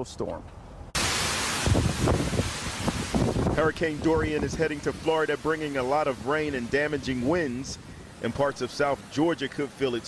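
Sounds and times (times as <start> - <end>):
heavy rain lashing trees: 1.0 - 10.0
howling wind: 1.6 - 5.1
wind buffeting microphone: 1.6 - 8.5.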